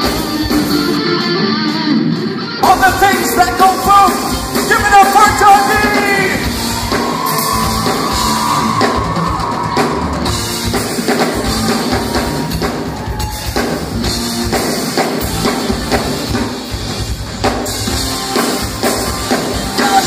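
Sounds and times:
busy drum kit: 0.0s - 1.2s, 2.6s - 20.0s
rock band playing live: 0.0s - 20.0s.

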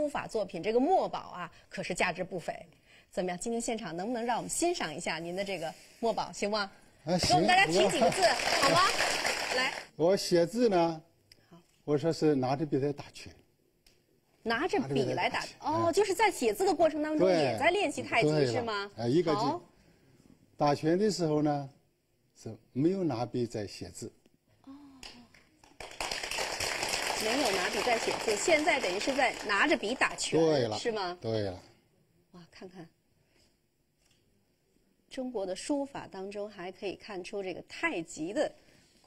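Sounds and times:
steady background hiss: 0.0s - 39.0s
person talking: 7.2s - 9.8s, 17.1s - 19.7s.

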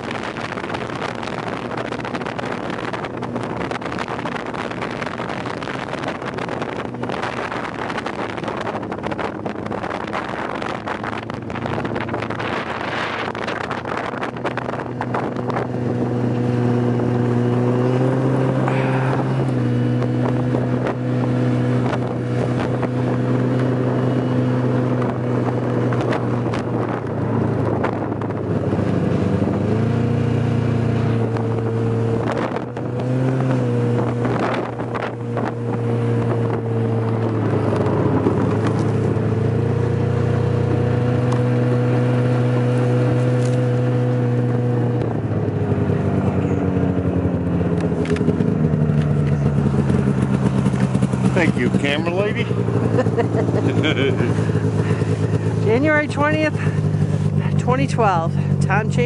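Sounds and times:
rush of wind and snow: 0.0s - 59.0s
snowmobile engine running: 0.0s - 59.0s.

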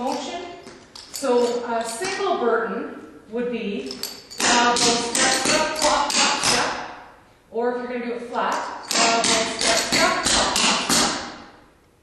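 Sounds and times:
person speaking: 1.2s - 11.2s.

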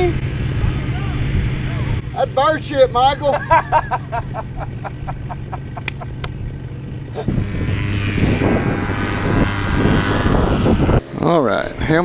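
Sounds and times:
paramotor engine and propeller: 0.0s - 12.0s
person laughing: 3.2s - 6.3s, 7.1s - 7.4s.

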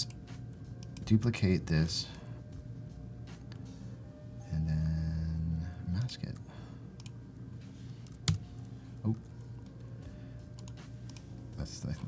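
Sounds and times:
low steady hum: 0.0s - 12.0s
laptop keyboard keystrokes: 8.0s - 8.4s.

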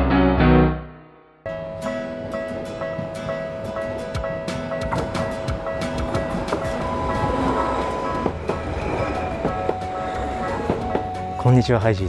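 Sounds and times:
crossing warning bell: 1.5s - 11.9s
tram wheels rumbling on rails: 1.5s - 12.0s.

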